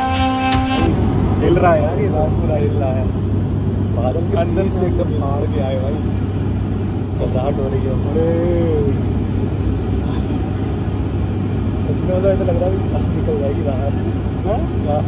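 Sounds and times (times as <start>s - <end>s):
background music: 0.0s - 0.9s
jet cabin drone: 0.0s - 15.0s.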